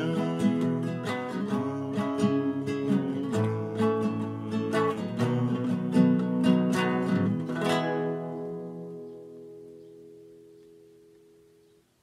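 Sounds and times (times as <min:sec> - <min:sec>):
classical guitar chord ringing: 0:00.0 - 0:11.9.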